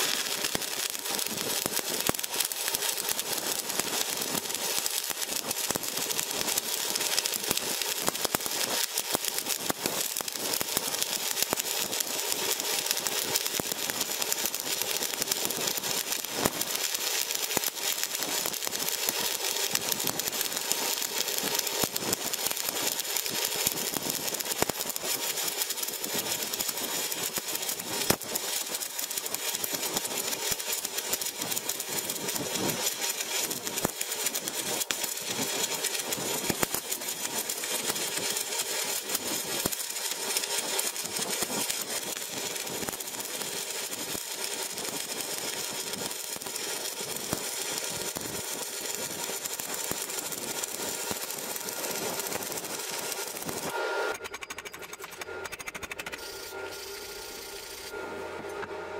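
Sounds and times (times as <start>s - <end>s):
welding arc crackling: 0.0s - 58.1s.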